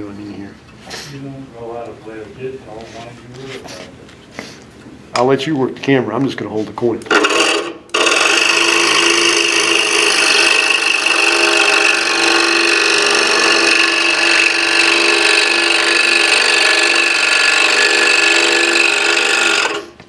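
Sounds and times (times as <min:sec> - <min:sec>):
scroll saw buzzing: 0:07.1 - 0:20.0.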